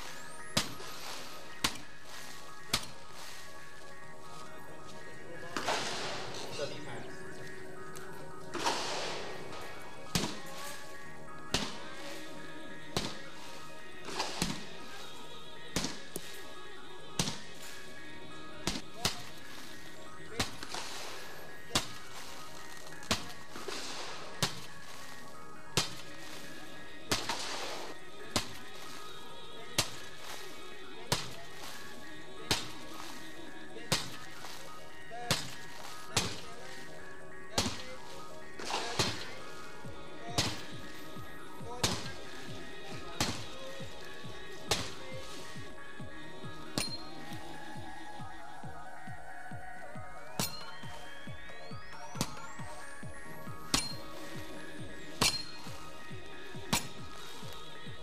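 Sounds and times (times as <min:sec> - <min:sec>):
background music: 0:00.0 - 0:58.0.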